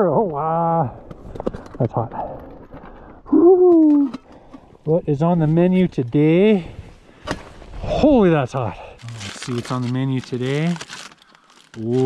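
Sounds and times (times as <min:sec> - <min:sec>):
man exclaiming ooh: 0:03.3 - 0:04.2
man speaking: 0:04.9 - 0:06.7, 0:07.8 - 0:10.8, 0:11.8 - 0:12.0.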